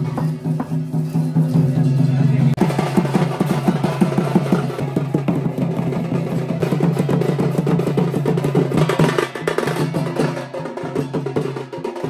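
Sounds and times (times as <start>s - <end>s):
fast folk drumming: 0.0s - 12.0s.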